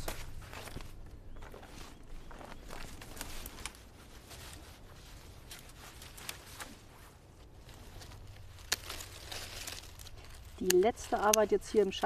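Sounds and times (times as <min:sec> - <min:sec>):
rustling of dry stems: 0:00.0 - 0:12.0
twig snapping: 0:08.0 - 0:12.0.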